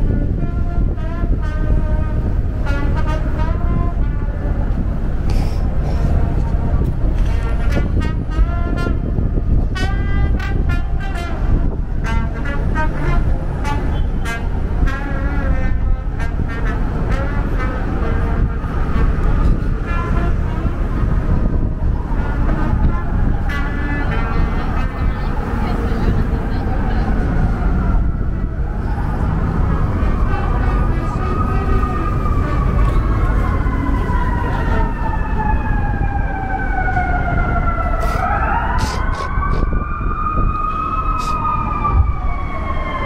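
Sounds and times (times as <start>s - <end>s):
rumble of passing vehicles: 0.0s - 43.0s
siren wailing: 18.4s - 43.0s
people talking: 23.8s - 27.6s.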